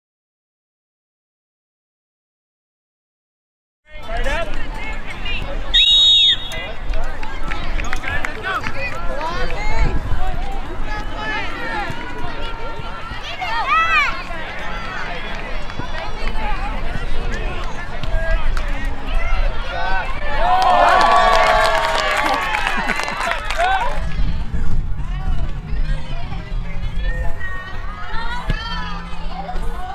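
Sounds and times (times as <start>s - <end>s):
people calling and shouting: 22.2s - 29.9s.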